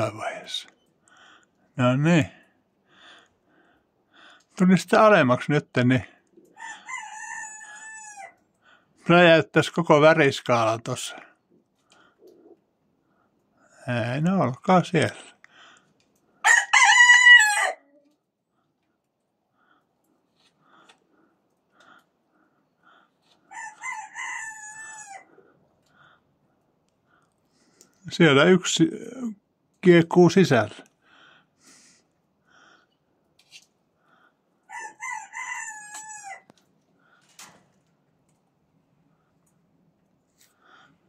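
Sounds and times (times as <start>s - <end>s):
rooster crowing: 6.5s - 8.4s, 16.4s - 17.9s, 23.5s - 25.4s, 34.6s - 36.5s.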